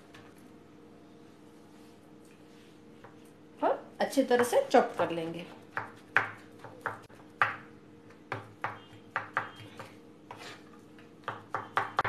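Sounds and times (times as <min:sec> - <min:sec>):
knife chopping on wooden board: 0:05.6 - 0:07.7, 0:08.3 - 0:10.6, 0:11.2 - 0:12.0.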